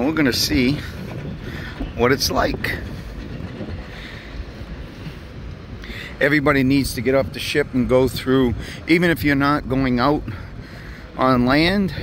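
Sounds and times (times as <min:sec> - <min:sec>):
outdoor rumble and hiss: 0:00.0 - 0:12.0.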